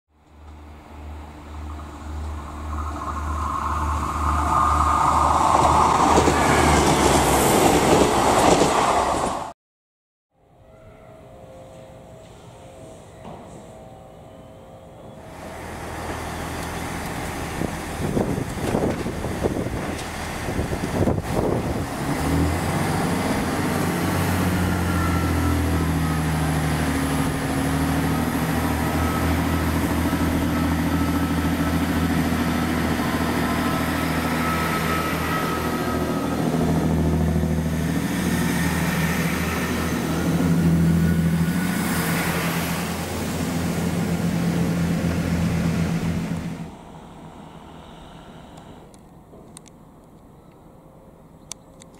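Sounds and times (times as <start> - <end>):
diesel train engines droning: 0.2 - 9.5, 11.1 - 51.9.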